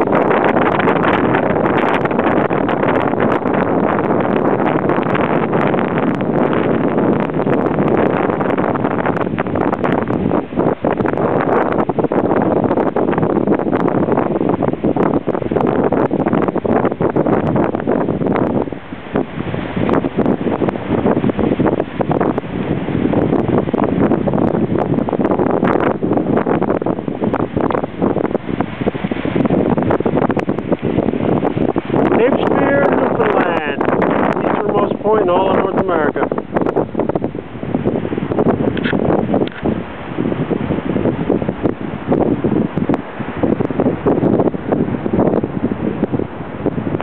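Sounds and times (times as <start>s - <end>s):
wind buffeting microphone: 0.0s - 47.0s.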